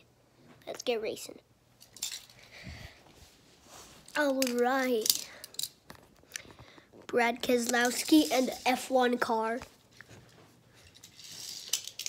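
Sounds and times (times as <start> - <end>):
soft handling rustle: 2.0 - 12.0.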